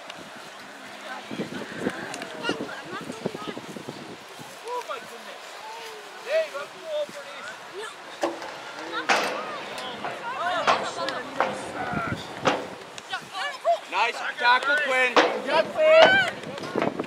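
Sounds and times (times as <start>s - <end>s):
people shouting and calling out: 0.9s - 17.0s
sharp knocks or claps: 14.6s - 17.0s.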